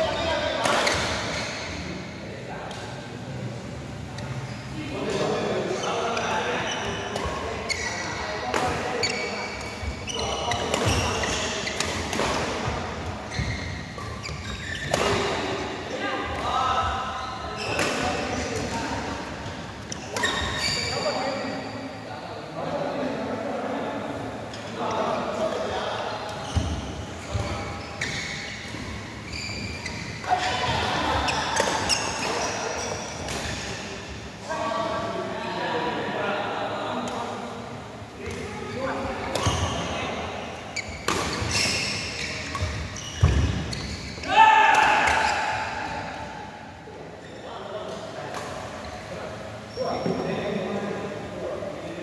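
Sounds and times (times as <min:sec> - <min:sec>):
shoes squeaking on court floor: 0:00.0 - 0:01.9, 0:04.1 - 0:15.6, 0:16.3 - 0:21.7, 0:26.2 - 0:34.2, 0:38.2 - 0:44.3, 0:47.2 - 0:50.4.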